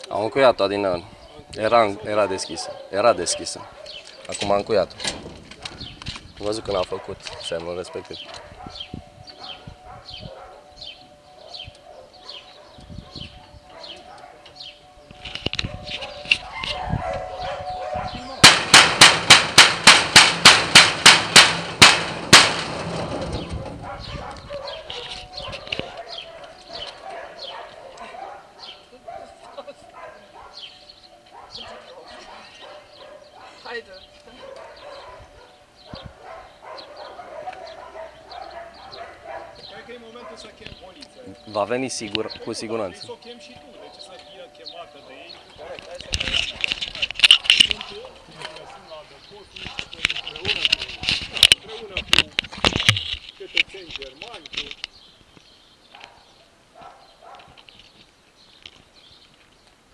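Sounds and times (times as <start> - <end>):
sharp metallic bangs: 4.2 - 7.9, 18.1 - 24.2.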